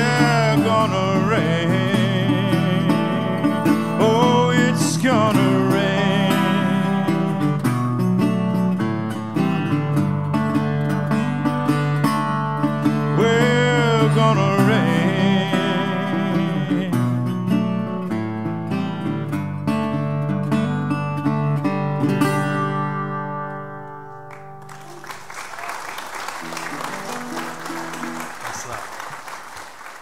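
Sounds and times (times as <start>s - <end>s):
resonator guitar picking: 0.0s - 24.9s
audience applause: 24.3s - 30.0s.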